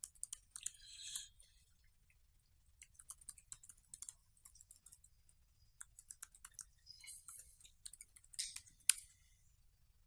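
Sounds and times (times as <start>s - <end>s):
keyboard typing clicks: 0.0s - 1.3s, 2.8s - 9.0s.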